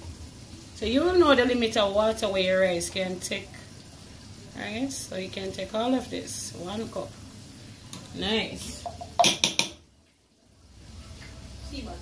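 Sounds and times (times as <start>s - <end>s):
utensil knocking against a pot: 8.9s - 9.9s.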